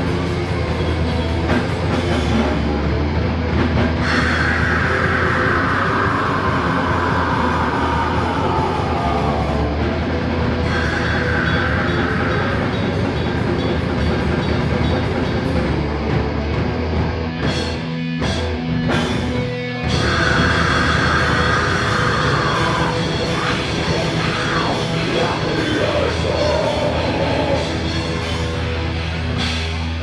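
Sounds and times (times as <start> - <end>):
heavy metal band playing live: 0.0 - 30.0.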